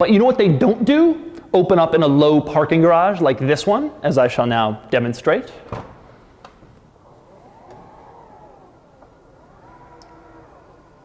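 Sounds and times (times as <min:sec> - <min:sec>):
electric door drive whining: 0:05.6 - 0:11.0
light clicks: 0:09.9 - 0:10.2.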